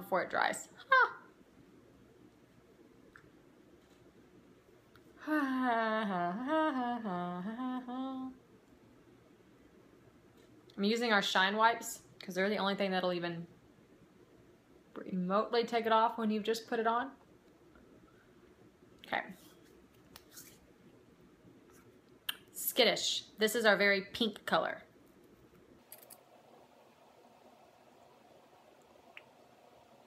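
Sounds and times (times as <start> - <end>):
woman humming a tune: 5.2 - 8.4
soft rustle: 19.2 - 20.8.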